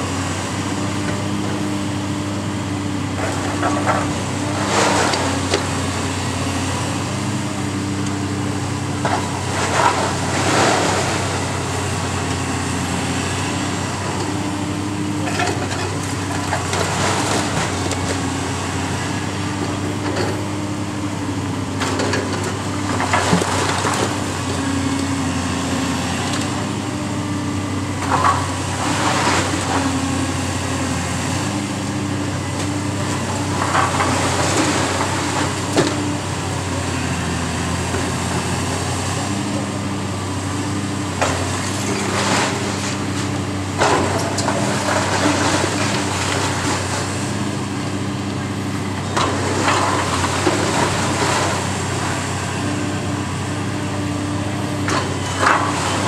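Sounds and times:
excavator diesel engine running: 0.0s - 56.0s
masonry crashing and crunching: 13.6s - 20.5s, 21.8s - 24.5s, 31.6s - 39.8s, 40.6s - 48.2s, 49.0s - 53.0s, 54.4s - 56.0s.

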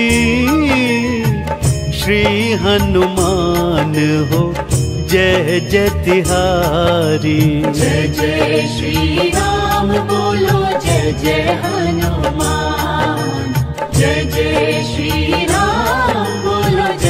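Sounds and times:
devotional music with rhythmic beat: 0.0s - 17.0s.

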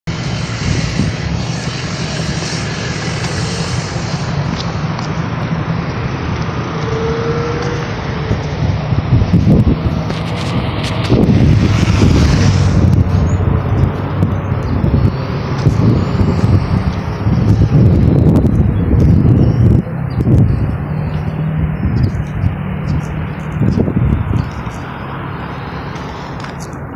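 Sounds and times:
motorcycle passing close: 0.1s - 26.8s
cars driving by: 0.1s - 26.9s.

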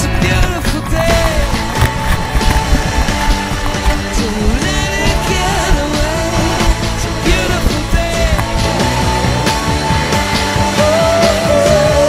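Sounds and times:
rock song with steady beat: 0.0s - 12.0s.

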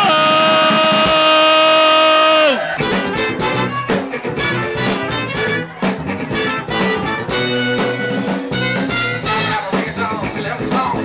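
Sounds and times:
horns holding long note: 0.0s - 2.8s
funk-rock band playing: 0.0s - 11.0s.

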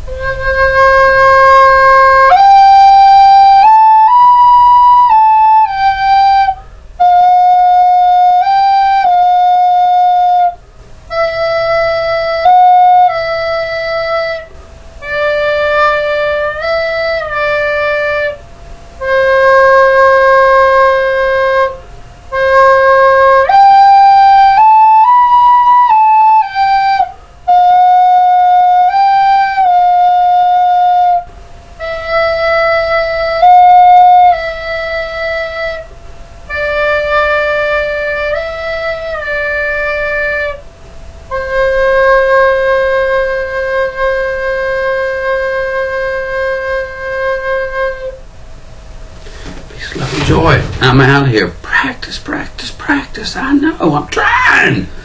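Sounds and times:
recorder playing simple tune: 0.0s - 48.3s, 49.2s - 52.4s.

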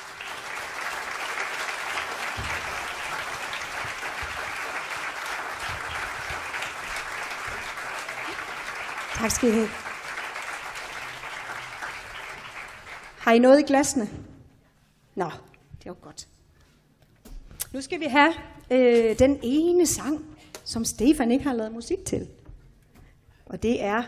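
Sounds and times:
audience applauding: 0.0s - 13.2s.

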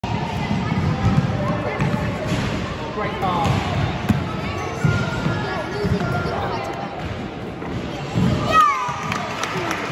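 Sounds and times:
voices in a hall: 0.0s - 9.9s.

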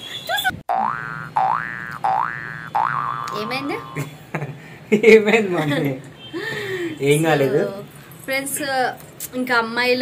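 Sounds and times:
cartoon boing: 0.7s - 4.1s.

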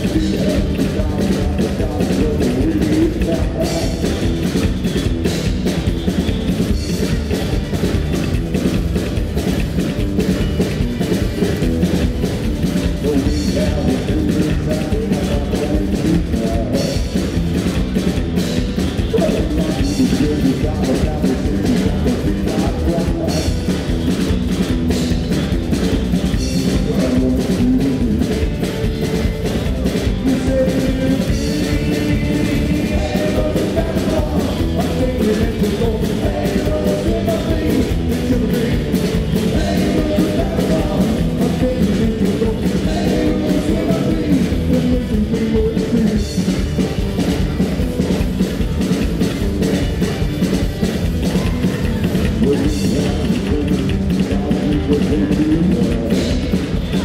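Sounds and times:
double bass: 0.0s - 57.0s
drum beat: 0.0s - 57.0s
electric guitar: 0.0s - 57.0s
live band playing: 0.0s - 57.0s.

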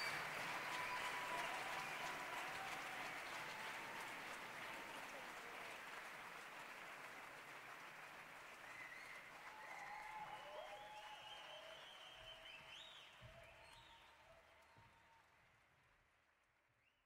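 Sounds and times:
audience applause: 0.0s - 15.7s.

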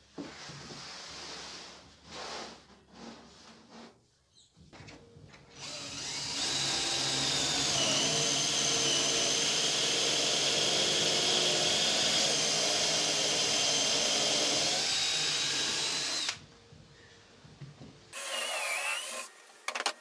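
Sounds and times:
power tool motor whining: 5.6s - 16.4s.

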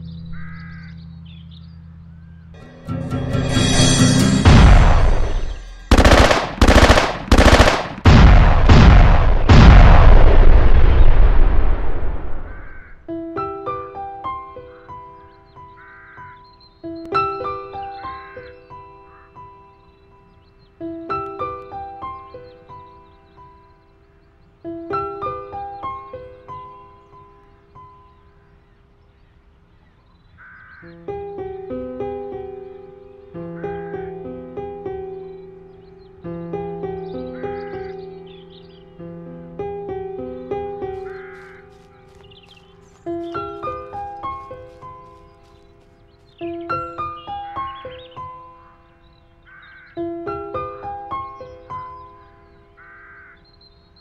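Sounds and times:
slow piano notes: 0.0s - 6.0s, 12.9s - 28.6s, 30.8s - 52.9s
machine-gun fire: 4.4s - 11.9s.

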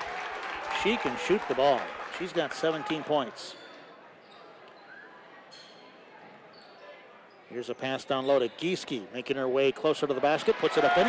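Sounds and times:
murmur of voices in hall: 0.0s - 11.0s.

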